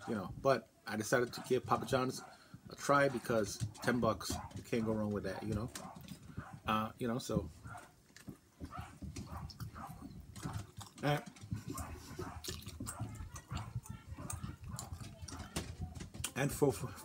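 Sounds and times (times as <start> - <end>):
person chewing food: 7.6 - 16.4.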